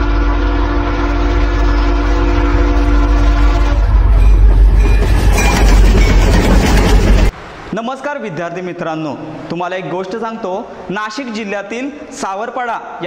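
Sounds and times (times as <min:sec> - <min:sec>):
train horn: 0:00.0 - 0:04.8
train rumble and clatter: 0:02.8 - 0:07.4.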